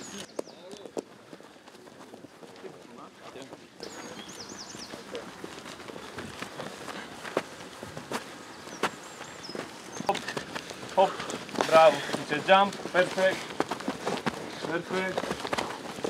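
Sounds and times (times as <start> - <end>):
bird chirping: 0.0 - 1.0, 3.8 - 6.1, 8.2 - 10.6
footsteps jogging on grass: 0.0 - 16.0.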